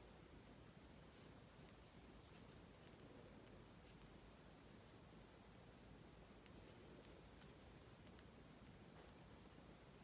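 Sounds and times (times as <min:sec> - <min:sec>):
thread drawn through beadwork: 0:01.7 - 0:04.9.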